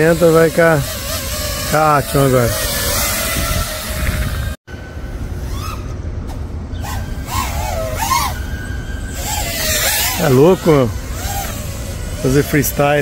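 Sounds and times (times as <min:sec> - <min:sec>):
quadcopter propellers buzzing: 0:00.0 - 0:13.0.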